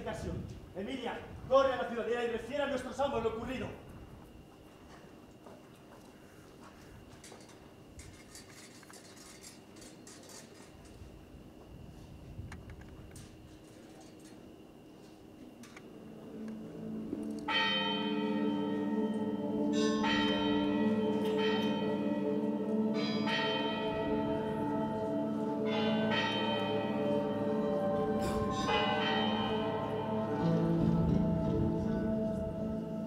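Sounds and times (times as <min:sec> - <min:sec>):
low sustained drone: 0:15.8 - 0:33.0
bell strikes ringing: 0:25.6 - 0:32.4.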